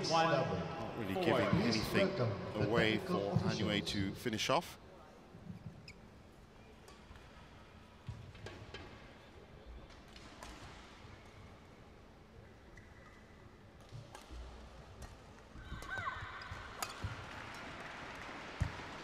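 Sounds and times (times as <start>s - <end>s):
shoe squeaks on court: 5.6s - 6.1s
racket striking shuttlecock: 15.8s - 17.4s.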